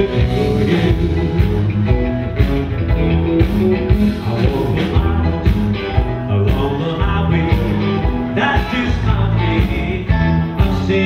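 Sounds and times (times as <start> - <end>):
country band playing: 0.0 - 11.0.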